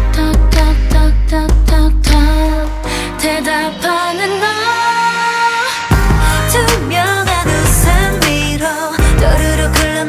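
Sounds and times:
deep bass: 0.0s - 3.1s, 5.9s - 10.0s
woman singing pop song: 0.0s - 10.0s.

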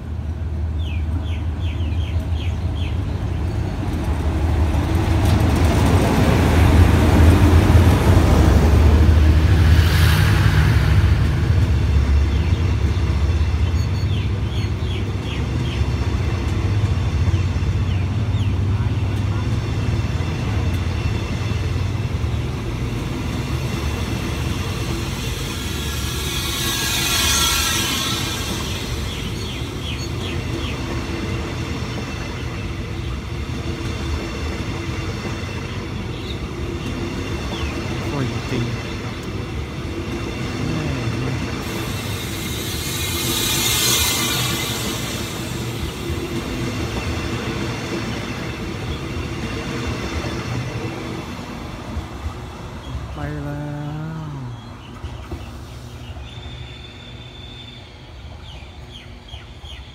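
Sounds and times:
train wheels rumbling on rail: 0.0s - 59.9s
rush of noise: 6.5s - 13.6s.

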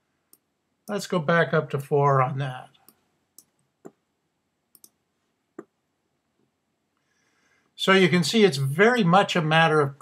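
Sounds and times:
computer mouse clicks: 4.7s - 5.0s.

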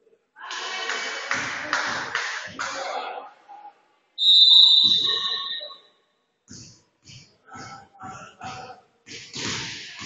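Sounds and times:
referee's whistle long blast: 4.2s - 5.7s.

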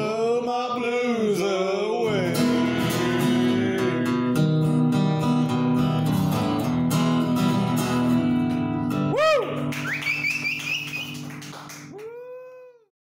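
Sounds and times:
acoustic guitar chord ringing: 2.1s - 9.2s
warbling high whistle: 9.2s - 11.2s.

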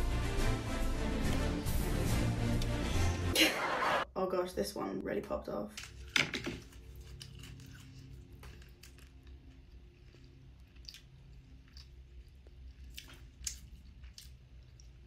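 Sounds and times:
quiet background music: 0.0s - 15.0s
person chewing: 6.0s - 15.0s.

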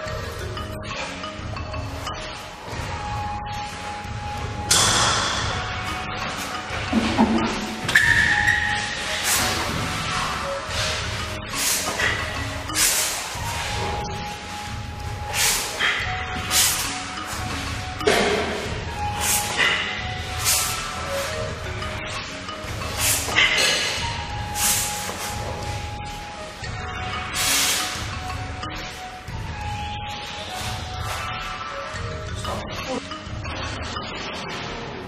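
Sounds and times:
background music with held notes: 0.0s - 35.0s.

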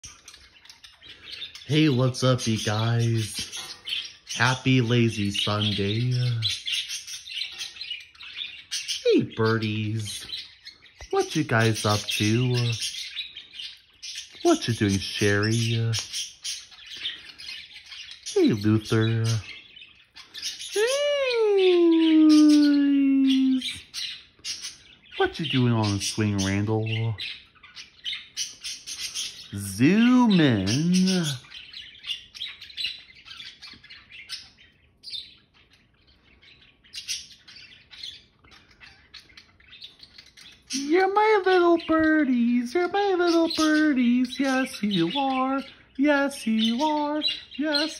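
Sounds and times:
budgerigars chirping: 0.0s - 20.9s, 22.0s - 47.9s.

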